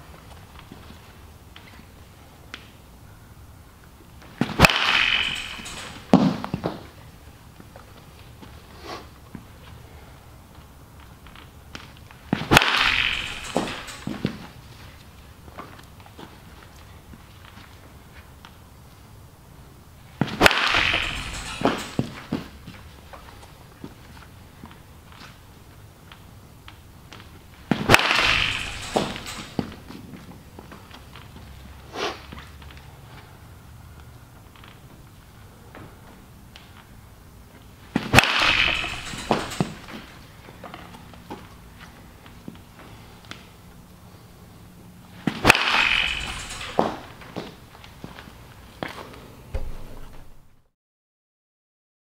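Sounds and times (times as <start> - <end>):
bat hitting baseball crack: 4.4 - 6.9, 12.3 - 14.5, 20.2 - 22.5, 27.7 - 29.9, 37.9 - 40.2, 45.2 - 47.6.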